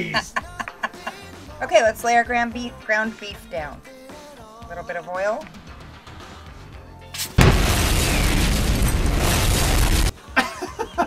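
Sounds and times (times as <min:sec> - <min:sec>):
loud explosion: 0:07.4 - 0:10.1.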